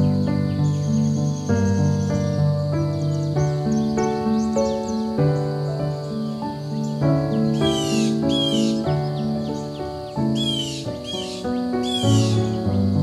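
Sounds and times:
bird calling: 0.0s - 13.0s
slow piano music: 0.0s - 13.0s.

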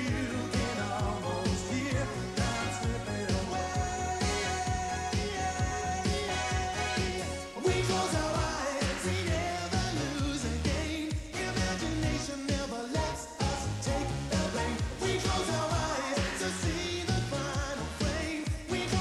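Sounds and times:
pop-rock song with vocals: 0.0s - 19.0s.

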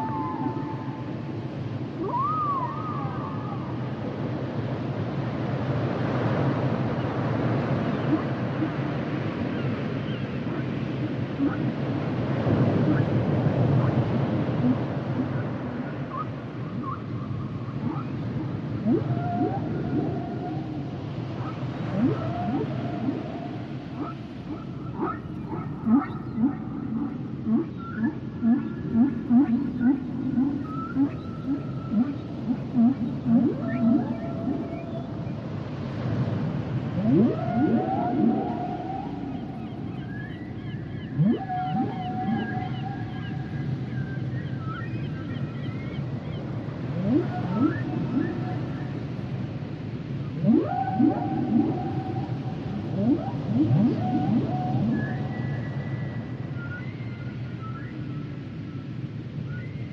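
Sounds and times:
humpback whale song: 0.0s - 4.2s, 7.7s - 59.9s.

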